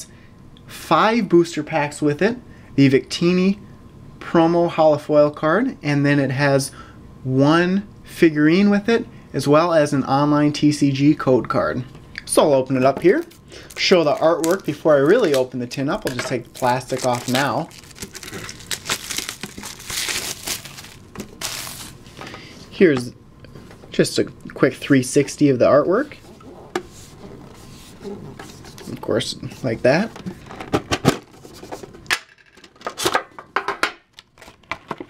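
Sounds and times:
plastic shrink wrap crinkling: 13.1 - 22.2.

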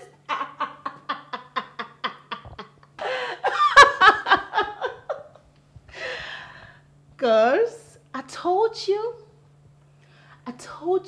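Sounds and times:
woman laughing: 0.0 - 5.4.

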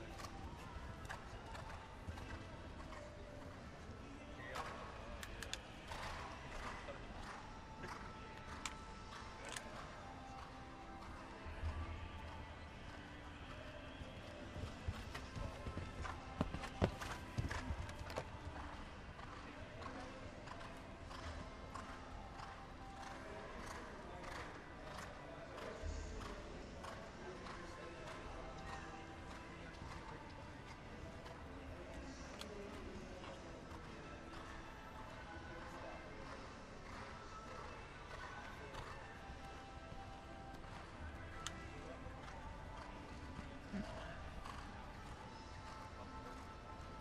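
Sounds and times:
faint background music: 0.0 - 47.0
murmur of voices: 0.0 - 47.0
horse hoofbeats on soft ground: 13.5 - 19.9.

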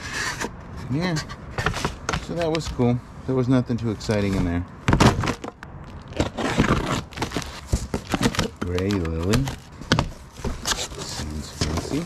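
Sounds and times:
scraping rustling and clicking: 4.0 - 12.0.

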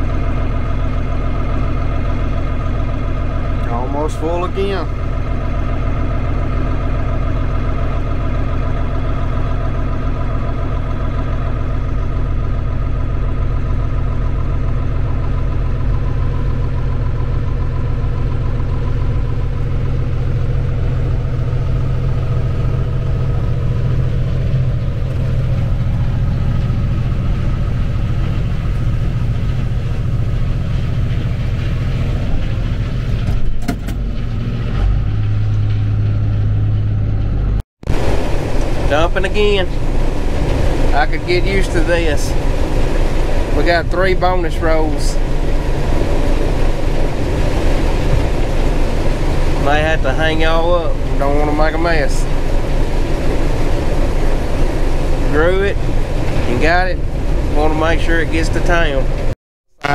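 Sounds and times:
combine harvester engine droning: 0.0 - 59.9.

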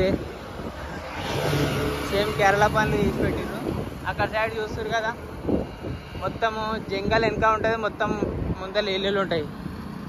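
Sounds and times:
vehicle passing on highway: 0.0 - 10.0.

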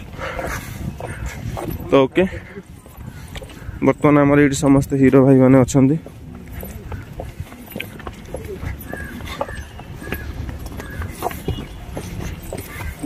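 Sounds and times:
horse hooves clip-clopping: 0.0 - 13.0
faint voices of people: 6.1 - 13.0.

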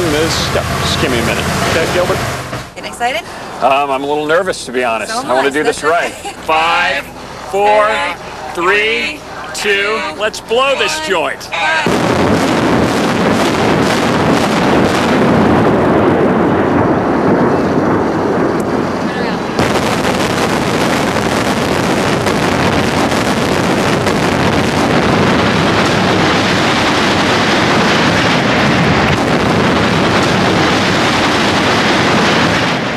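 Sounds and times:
building collapsing rumble: 0.0 - 3.2, 11.8 - 32.9.

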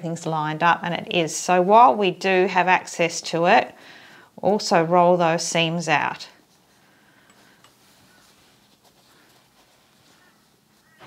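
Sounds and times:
fabric rustling: 6.4 - 11.0.

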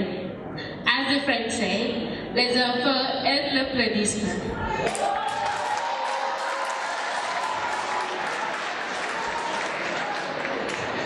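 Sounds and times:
audience applauding: 4.9 - 11.0.

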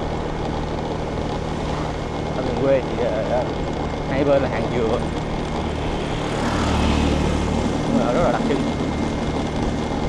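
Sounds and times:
scooter engine drone: 0.0 - 10.0
wind and road noise: 0.0 - 10.0.

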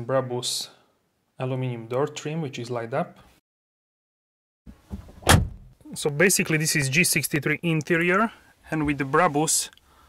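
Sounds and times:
sharp thud: 4.9 - 5.7.

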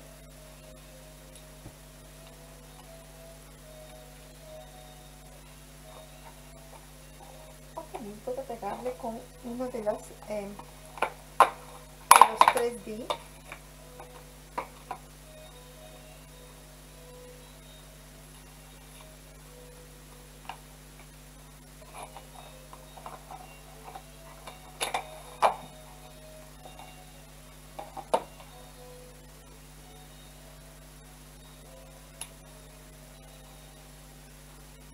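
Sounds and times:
low electrical hum: 0.0 - 34.9.

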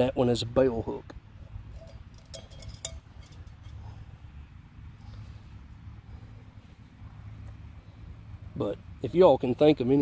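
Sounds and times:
low steady background rumble: 0.0 - 10.0
metal cup clinking: 1.7 - 3.8.

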